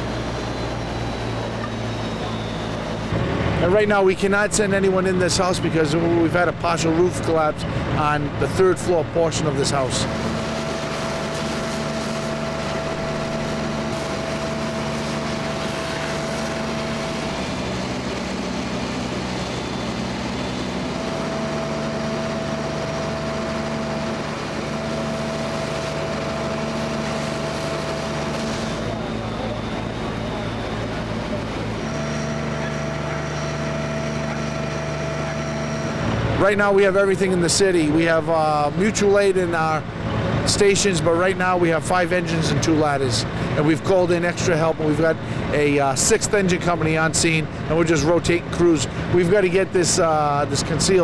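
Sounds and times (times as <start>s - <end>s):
fire engine pumps droning: 0.0s - 51.0s.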